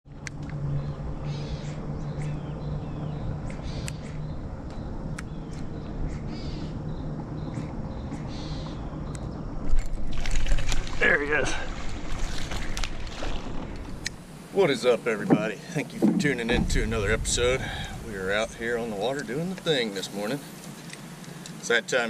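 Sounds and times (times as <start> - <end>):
harsh bird calls: 0.8 - 9.5.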